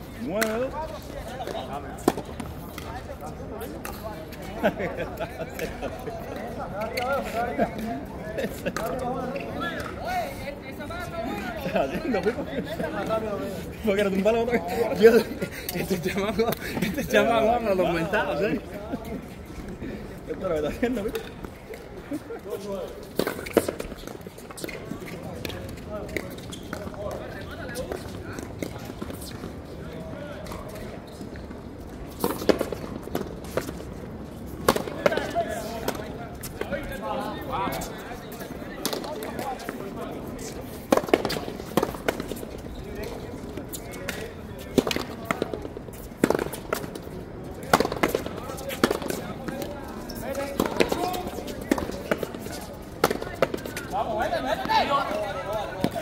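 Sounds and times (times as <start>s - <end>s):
players' voices: 0.0s - 56.0s.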